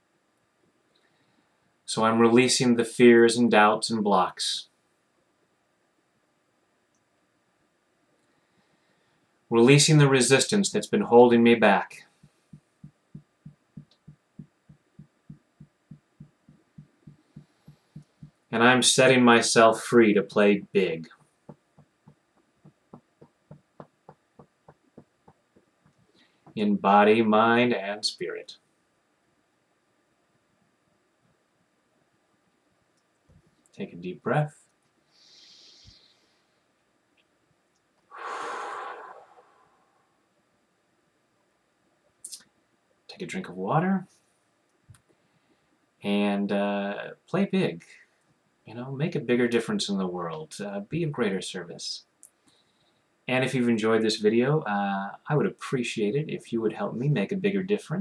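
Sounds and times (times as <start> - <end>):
fingertips tapping on body: 12.2 - 18.4, 21.1 - 26.6
man taking deep breath: 35.1 - 36.5, 38.1 - 39.9.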